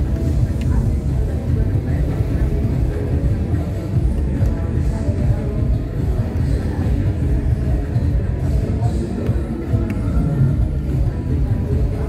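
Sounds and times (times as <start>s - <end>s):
music: 0.0s - 12.0s
people's voices: 0.0s - 12.0s
steady low street rumble: 0.0s - 12.0s.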